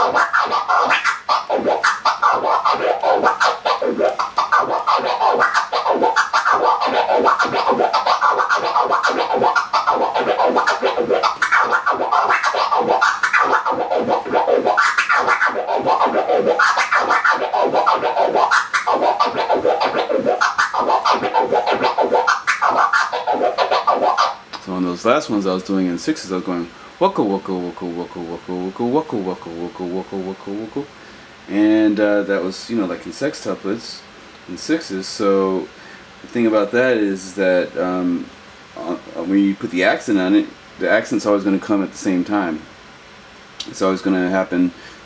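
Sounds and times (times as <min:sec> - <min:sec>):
vinyl record scratching: 0:00.0 - 0:24.4.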